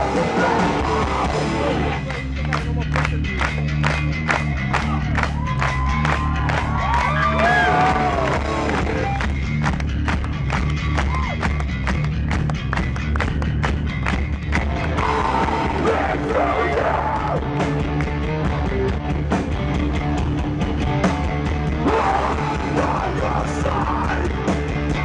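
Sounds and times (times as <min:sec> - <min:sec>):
punk band playing live: 0:00.0 - 0:25.0
crowd cheering and whooping: 0:04.3 - 0:09.3, 0:10.7 - 0:11.6, 0:14.8 - 0:17.6.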